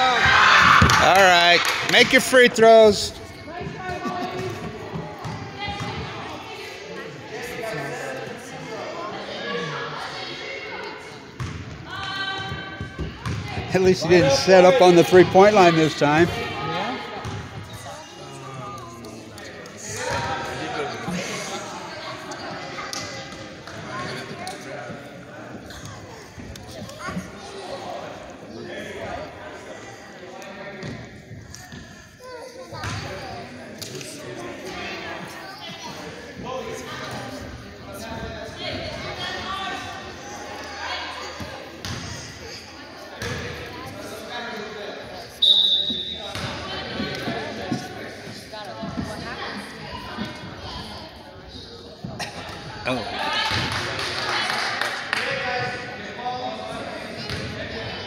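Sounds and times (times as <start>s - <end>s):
chatter of people: 0.0s - 58.0s.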